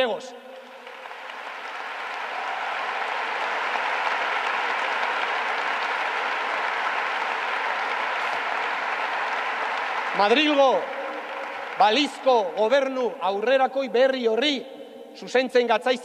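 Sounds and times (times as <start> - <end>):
audience applauding: 0.6 - 13.0.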